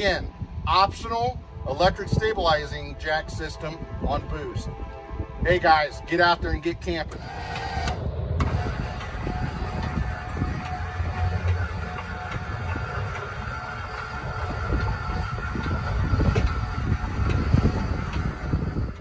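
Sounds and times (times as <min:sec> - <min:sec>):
electric jack motor whining: 0:06.9 - 0:19.0.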